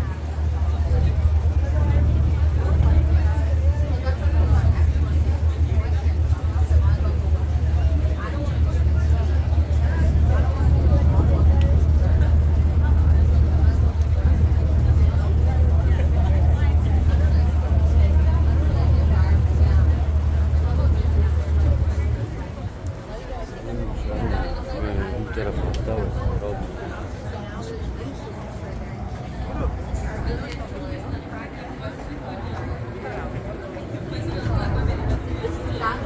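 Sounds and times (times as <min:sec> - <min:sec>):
boat engine droning: 0:00.0 - 0:36.0
passengers chattering: 0:00.0 - 0:36.0.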